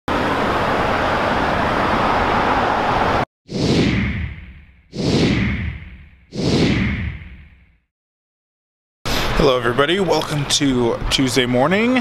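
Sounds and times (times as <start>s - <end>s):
traffic roar: 0.1s - 3.2s.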